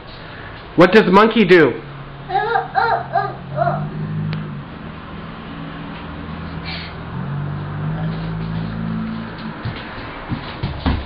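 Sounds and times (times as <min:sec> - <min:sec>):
low hum: 0:03.1 - 0:09.6
toddler footsteps on wooden floor: 0:07.7 - 0:11.0.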